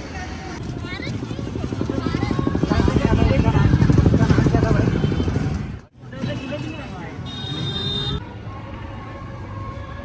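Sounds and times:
street voices: 0.0s - 10.0s.

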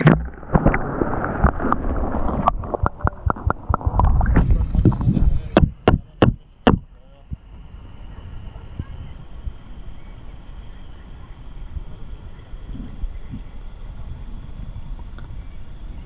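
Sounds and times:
muffled water sloshing underwater: 0.0s - 10.2s.

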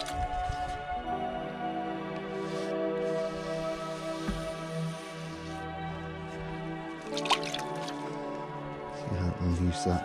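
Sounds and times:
background music: 0.0s - 10.0s
brush splashing in water: 7.0s - 8.2s.

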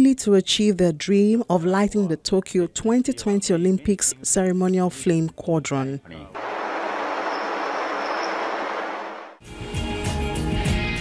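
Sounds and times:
propellers whirring: 6.4s - 9.4s.

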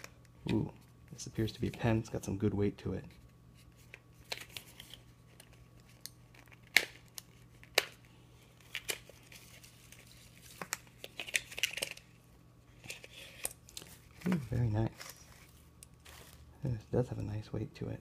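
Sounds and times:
paper crinkling: 3.2s - 16.5s.

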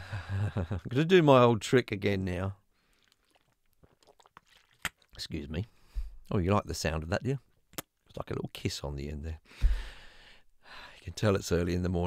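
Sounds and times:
person gulping a drink: 2.8s - 5.2s
lip smack: 3.3s - 5.1s, 7.7s - 7.9s.

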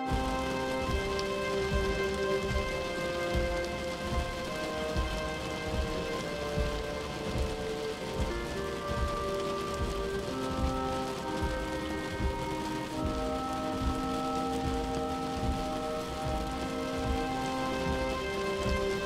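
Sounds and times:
rain-like hiss: 0.0s - 19.0s
synth chords over low beat: 0.0s - 19.0s.

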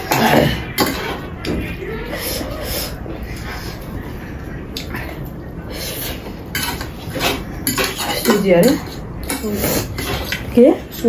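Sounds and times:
utensils tapping and scraping plates: 0.0s - 3.5s, 5.7s - 11.0s.

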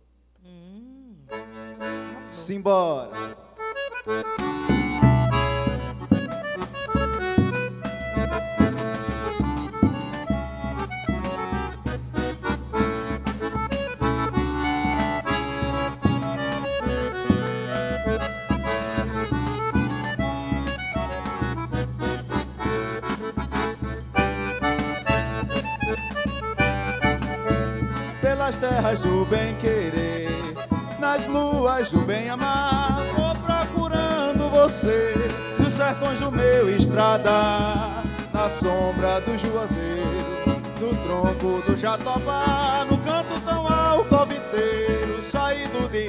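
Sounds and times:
accordion melody: 0.4s - 46.0s.

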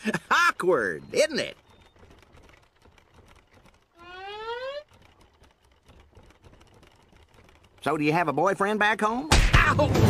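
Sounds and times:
faint rapid clicking: 0.0s - 9.3s.

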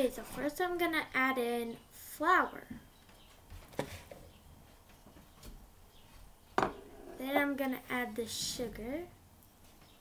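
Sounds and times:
glass bowl knocking plastic bowl: 6.6s - 6.9s.

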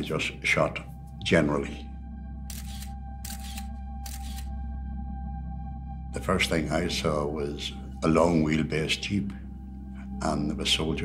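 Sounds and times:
low music drone: 0.0s - 11.0s
camera shutter firing: 2.5s - 4.5s.

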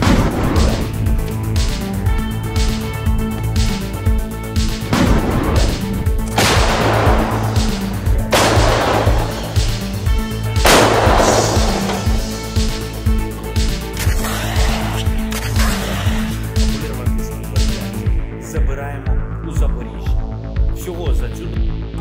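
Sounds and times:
music with steady beat: 0.0s - 22.0s
weapon fire blasts: 4.9s - 10.0s, 10.6s - 12.7s.

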